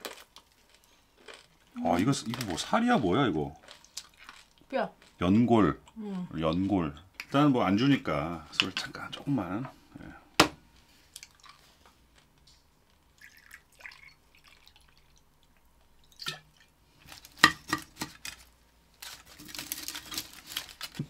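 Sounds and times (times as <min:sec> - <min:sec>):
liquid trickling into glass: 0:13.2 - 0:15.2.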